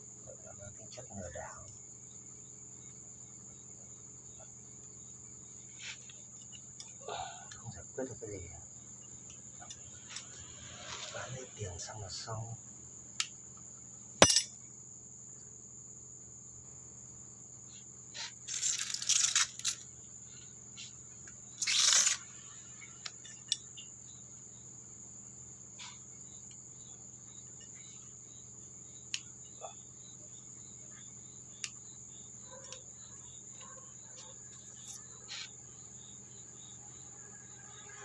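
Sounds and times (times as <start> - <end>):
crickets trilling: 0.0 - 38.0.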